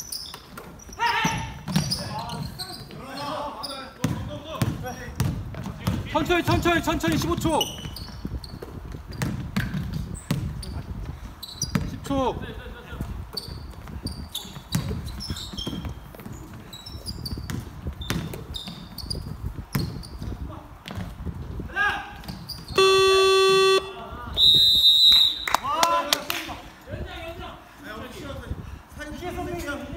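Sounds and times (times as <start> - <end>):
sneaker squeaks: 0.0 - 6.0, 7.4 - 12.0, 13.3 - 21.1, 22.2 - 23.9
basketball dribbling: 4.0 - 10.8, 11.6 - 11.9, 17.3 - 19.0
scoreboard buzzer: 22.8 - 24.0.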